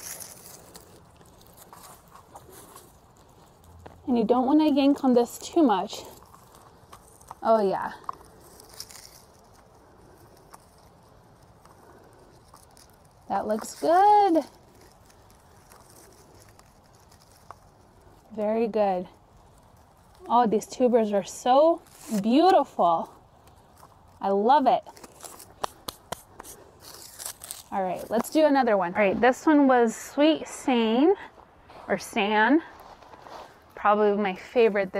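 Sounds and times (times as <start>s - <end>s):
soil rustling and pattering: 0.0s - 34.9s.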